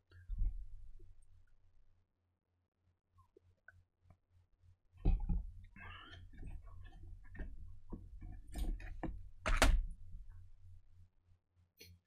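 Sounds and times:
low steady hum: 3.2 - 11.4.

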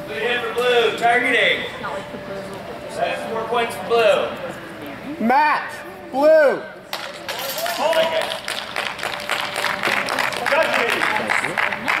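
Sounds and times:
small group clapping: 7.7 - 12.0.

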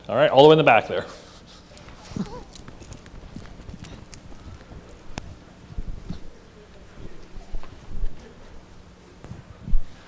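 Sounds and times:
footsteps: 1.3 - 10.0
microphone handling noise: 9.2 - 10.0.

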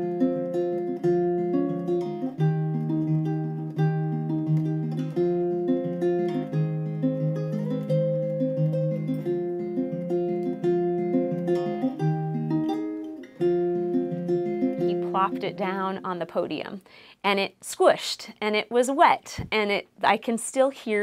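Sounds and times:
acoustic guitar plucked notes: 0.0 - 16.8.

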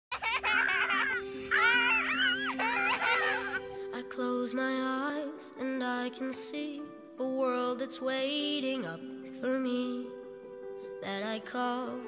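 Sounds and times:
girl laughing with high squeals: 0.1 - 3.6
background music chord: 0.2 - 12.0.

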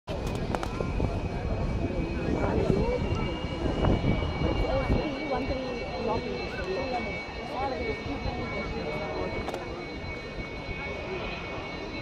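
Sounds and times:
jet engine rumbling and whining: 0.1 - 12.0
spectators chattering: 0.1 - 12.0.

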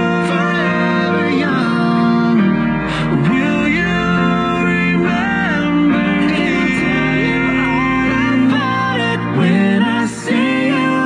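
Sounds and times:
song with singing over guitar: 0.0 - 11.0.

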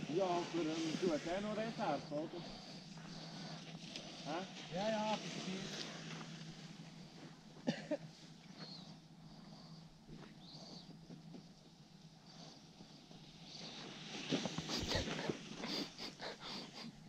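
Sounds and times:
sled runners scraping over snow: 0.0 - 7.4, 13.1 - 16.4.

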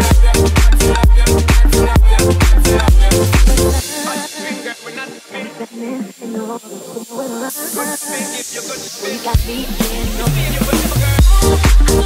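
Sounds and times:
dance music melodic line: 0.0 - 6.0, 7.4 - 12.0.

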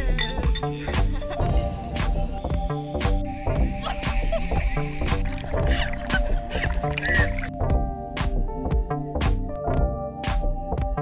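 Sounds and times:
electronic music with steady beat: 0.0 - 11.0
woman laughing: 0.8 - 1.6, 3.8 - 4.8, 5.6 - 7.4
water splashing: 3.5 - 7.6.

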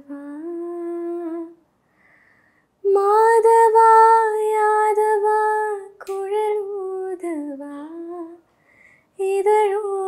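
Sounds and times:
woman singing unaccompanied: 0.0 - 1.6, 2.8 - 8.4, 9.2 - 10.0
soft breath: 1.7 - 2.8, 8.5 - 9.2.

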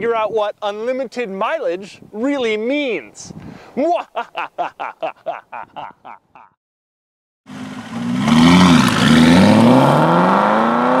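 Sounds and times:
car engine accelerating hard: 7.5 - 11.0.

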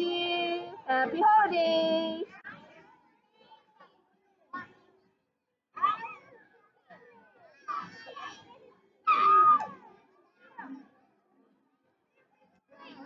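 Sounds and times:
children calling and chattering: 0.0 - 13.0.

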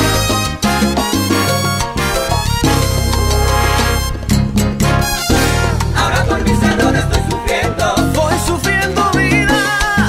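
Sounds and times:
salsa band music: 0.0 - 10.0.

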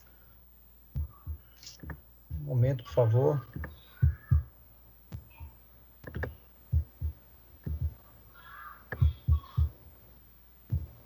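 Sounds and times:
faint hum: 0.0 - 11.0
low dull thumps: 0.9 - 2.7, 3.5 - 8.0, 8.9 - 9.8, 10.6 - 11.0.

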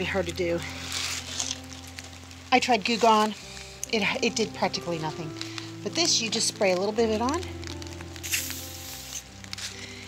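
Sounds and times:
background music with held tones: 0.0 - 10.0
aerosol can spraying hiss: 8.2 - 9.8.

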